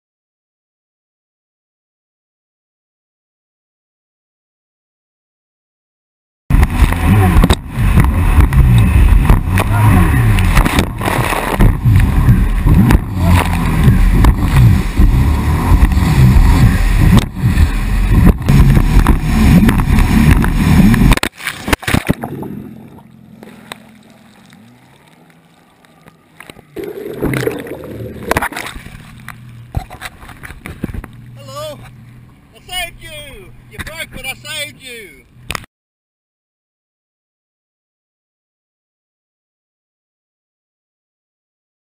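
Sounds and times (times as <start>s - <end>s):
muffled low underwater hum: 6.5s - 34.2s
water noise: 6.5s - 35.7s
jet ski engine running hard: 6.6s - 21.2s, 27.9s - 32.5s.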